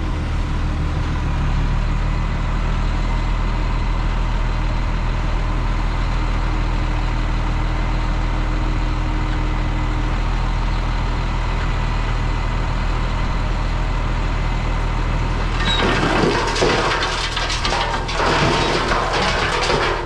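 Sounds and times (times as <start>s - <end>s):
heavy diesel engine running: 0.0s - 20.0s.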